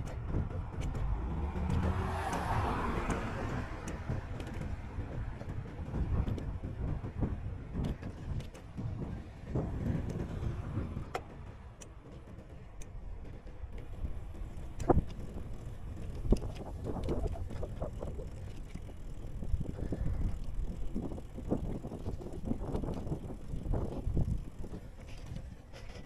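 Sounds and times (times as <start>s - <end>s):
bicycle knocks and rattles: 0.0s - 26.0s
bicycle tyres rumbling on pavement: 0.0s - 26.0s.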